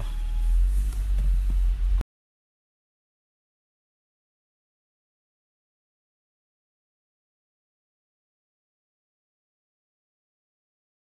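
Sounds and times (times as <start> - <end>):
car rumble from inside cabin: 0.0 - 2.0.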